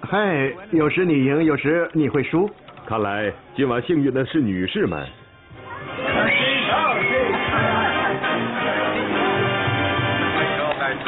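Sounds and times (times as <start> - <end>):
background music: 3.2 - 11.0
voices celebrating: 4.8 - 11.0.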